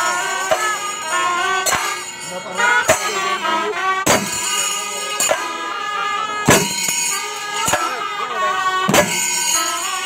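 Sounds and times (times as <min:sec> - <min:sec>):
cymbals: 0:00.0 - 0:10.0
nasal reed pipe melody: 0:00.0 - 0:10.0
drums: 0:04.0 - 0:04.6, 0:06.4 - 0:08.0, 0:08.8 - 0:10.0.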